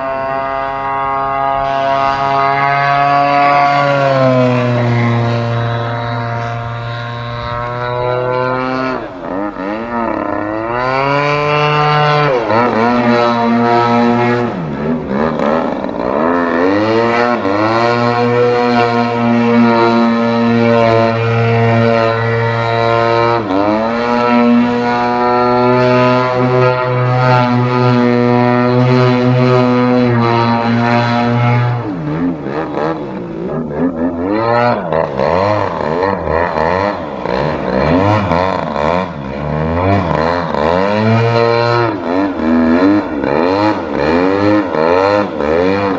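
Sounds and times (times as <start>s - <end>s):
model plane engine and propeller: 0.0s - 45.9s.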